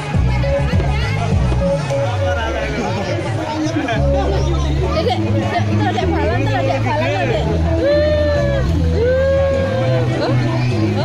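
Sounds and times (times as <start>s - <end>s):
loud crowd chatter: 0.0s - 11.0s
music with stepping bass line: 0.0s - 11.0s.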